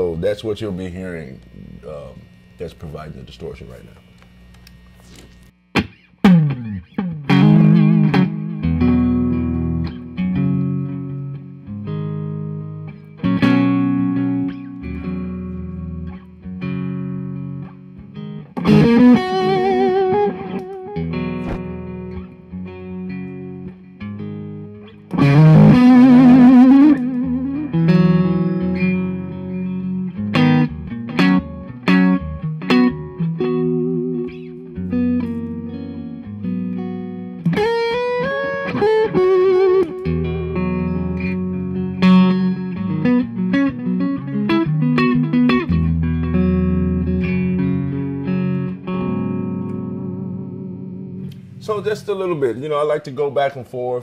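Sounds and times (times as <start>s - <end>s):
distorted electric guitar blues lead: 0.0s - 52.3s.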